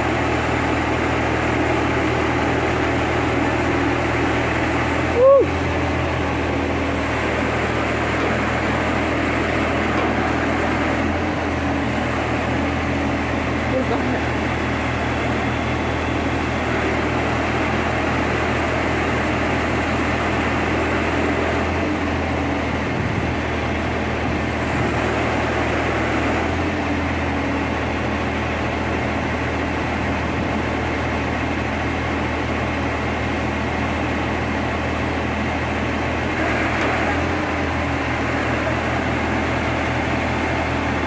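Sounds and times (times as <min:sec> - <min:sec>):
diesel engine running: 0:00.0 - 0:41.0.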